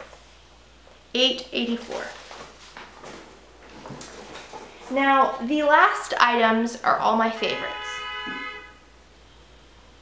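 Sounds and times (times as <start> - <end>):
vehicle horn honking: 7.4 - 8.9.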